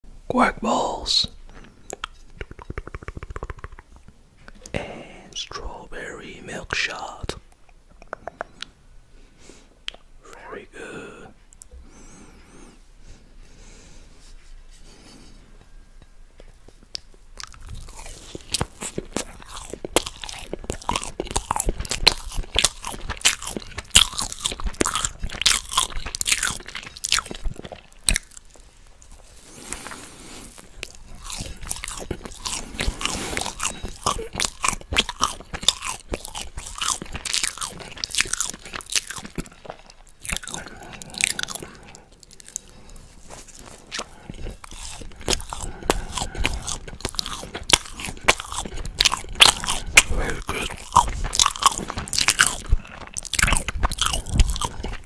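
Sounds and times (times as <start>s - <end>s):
finger licking: 1.9s - 4.8s
chewing with wet mouth smacking: 16.4s - 55.0s.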